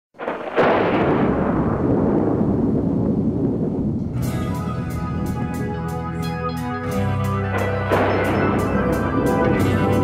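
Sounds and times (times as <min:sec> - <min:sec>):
explosive charge detonating: 0:00.2 - 0:04.5, 0:07.5 - 0:10.0.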